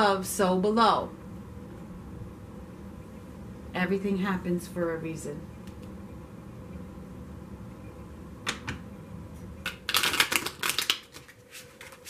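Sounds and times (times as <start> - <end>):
cards shuffling clicks: 9.7 - 12.0.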